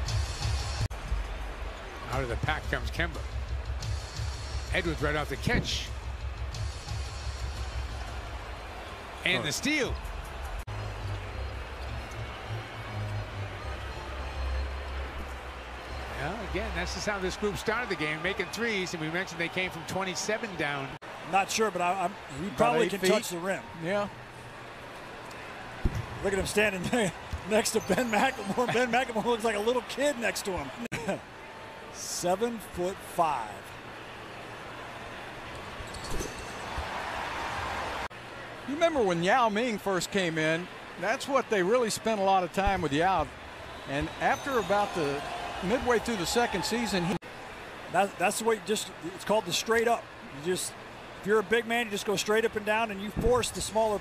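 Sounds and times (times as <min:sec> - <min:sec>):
arena background noise: 0:00.0 - 0:54.0.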